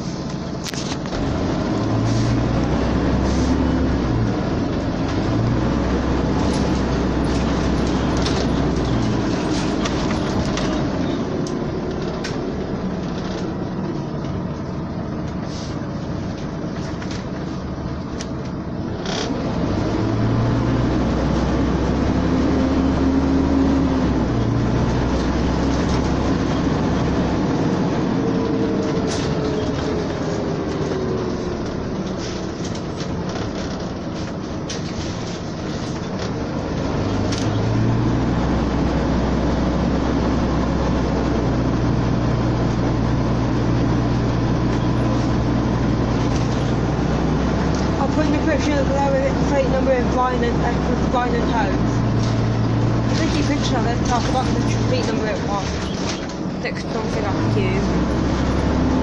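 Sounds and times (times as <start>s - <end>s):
bus engine accelerating: 0.0s - 59.0s.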